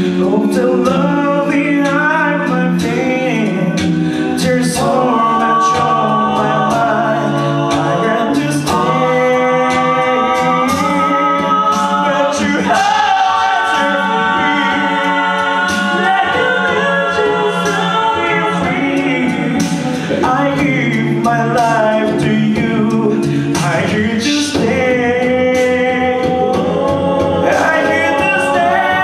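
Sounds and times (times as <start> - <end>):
male a cappella group singing: 0.0 - 29.0.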